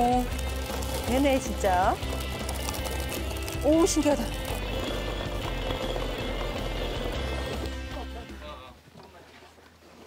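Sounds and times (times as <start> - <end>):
stone mill grinding coffee: 0.0 - 8.3
background music: 0.0 - 8.8.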